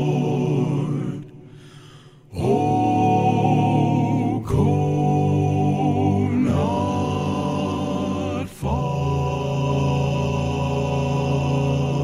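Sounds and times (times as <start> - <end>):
male vocal quartet singing: 0.0 - 12.0.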